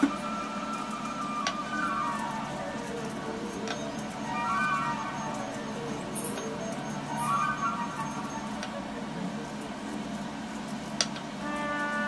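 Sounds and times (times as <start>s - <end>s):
held background tones: 0.0s - 12.0s.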